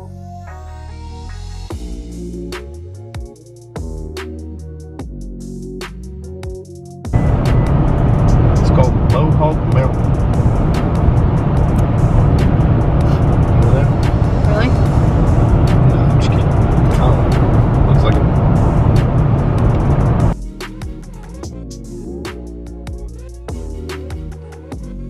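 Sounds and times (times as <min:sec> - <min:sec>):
car road noise inside cabin: 0:07.1 - 0:20.4.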